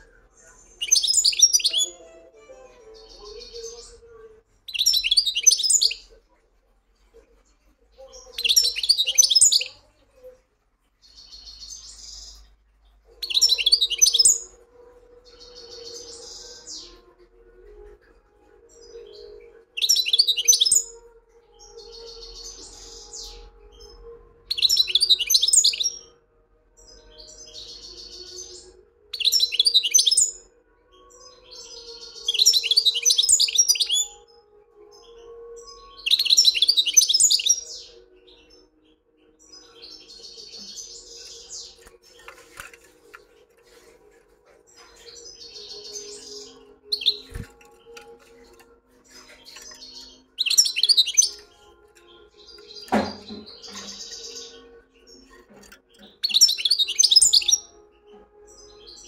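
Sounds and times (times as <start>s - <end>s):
goldfinch twittering song: 0.0s - 4.0s, 4.7s - 6.1s, 8.1s - 9.8s, 13.1s - 14.6s, 18.7s - 21.0s, 21.6s - 26.1s, 27.0s - 30.5s, 31.2s - 34.3s, 34.9s - 59.0s.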